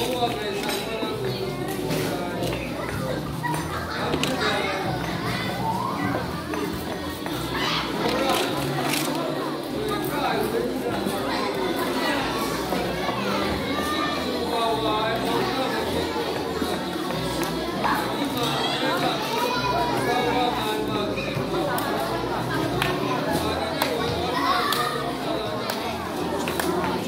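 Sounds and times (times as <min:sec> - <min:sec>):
children's voices overlapping: 0:00.0 - 0:27.0.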